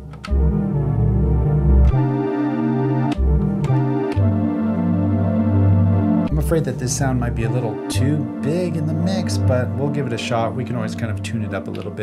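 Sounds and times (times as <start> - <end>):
held synth notes: 0.3 - 12.0.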